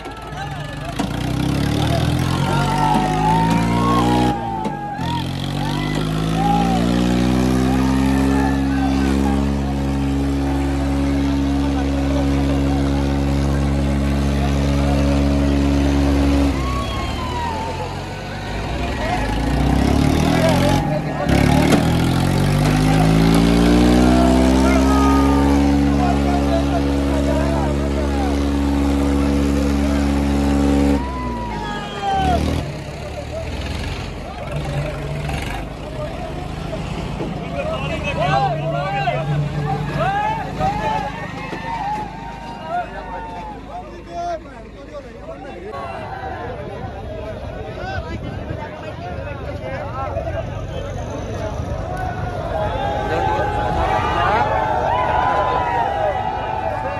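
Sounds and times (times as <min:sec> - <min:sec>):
tractor engine revving hard: 0:00.0 - 0:43.0
crowd shouting and cheering: 0:00.0 - 0:56.9.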